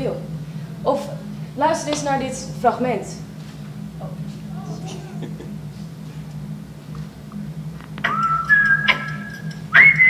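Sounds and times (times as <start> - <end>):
whistled tune over loudspeakers: 8.0 - 10.0.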